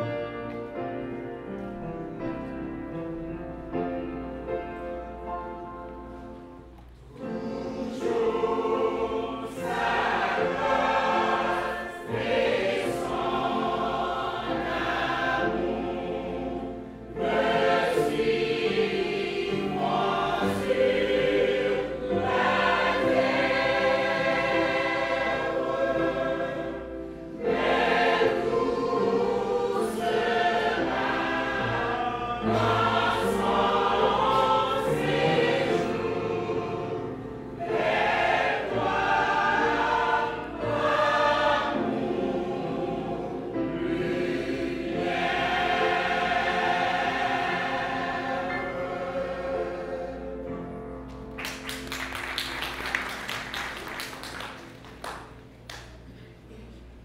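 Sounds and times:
church choir singing: 0.0 - 55.3.

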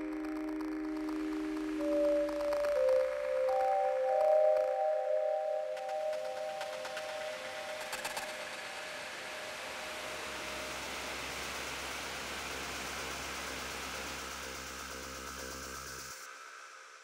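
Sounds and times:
glitchy clicks: 0.0 - 4.8
low drone: 0.0 - 17.0.

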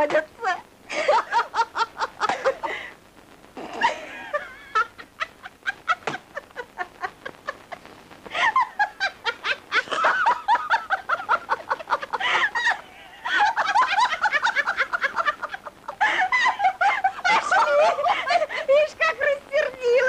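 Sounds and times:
woman cackling laughter: 0.9 - 2.9, 3.6 - 19.4.

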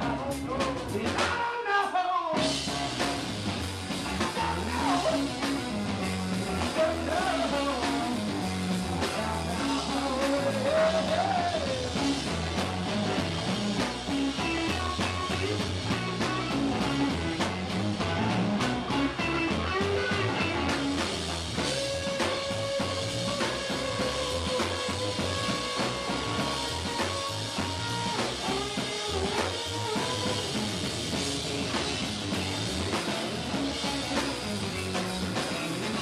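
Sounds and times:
drum kit: 0.0 - 1.7, 2.3 - 36.0
electric guitar: 0.0 - 36.0.

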